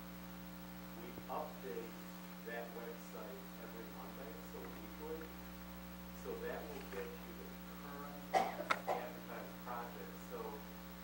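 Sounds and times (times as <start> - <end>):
electrical hum: 0.0 - 11.0
person coughing: 8.3 - 9.2.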